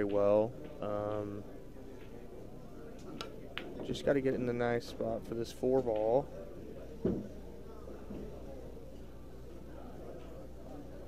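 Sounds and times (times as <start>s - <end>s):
faint murmur of voices: 0.0s - 11.0s
pool cue striking ball: 7.0s - 7.4s.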